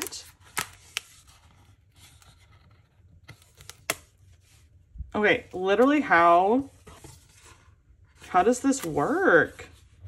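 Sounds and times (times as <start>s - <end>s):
cardboard rustling and scraping: 5.6s - 10.0s.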